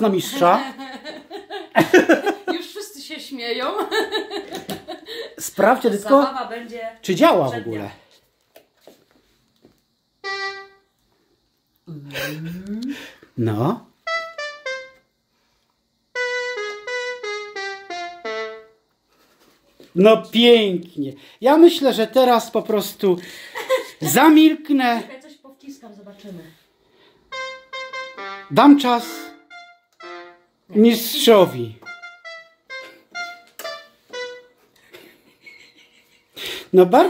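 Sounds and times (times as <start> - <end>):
electronic keyboard melody: 10.2 - 10.9, 14.0 - 15.1, 16.1 - 18.8, 27.3 - 34.8.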